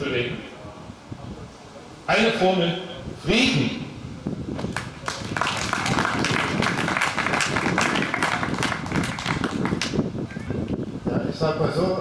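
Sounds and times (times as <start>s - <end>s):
crowd clapping: 4.6s - 10.0s.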